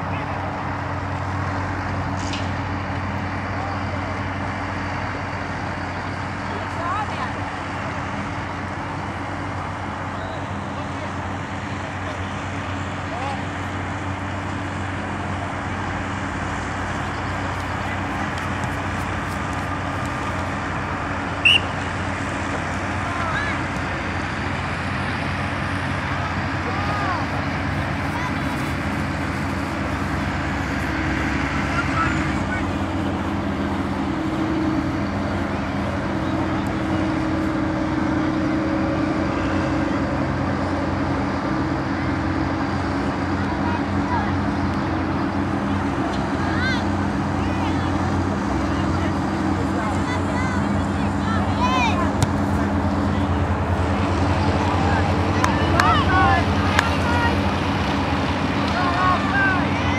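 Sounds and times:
steady low hum: 0.0 - 59.9
distant shouts: 17.0 - 22.2, 26.0 - 40.2, 43.2 - 59.9
referee's whistle blast: 21.4 - 21.9.

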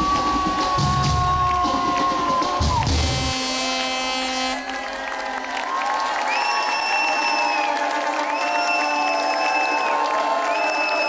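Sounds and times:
crowd cheering and clapping: 0.0 - 11.0.

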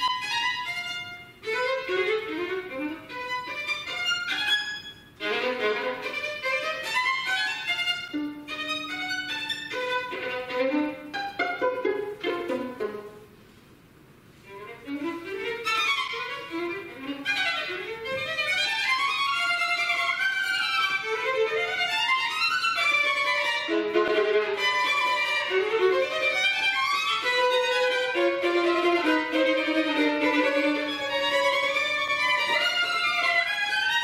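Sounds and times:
violin playing fast runs: 0.0 - 13.2, 14.4 - 34.0.

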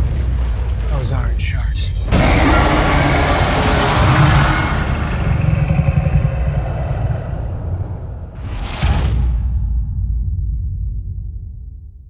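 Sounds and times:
deep low rumble: 0.0 - 12.0.

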